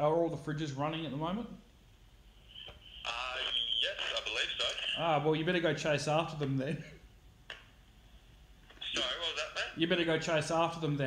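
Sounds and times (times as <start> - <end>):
man's voice through phone speaker: 3.0 - 5.6, 8.8 - 10.8.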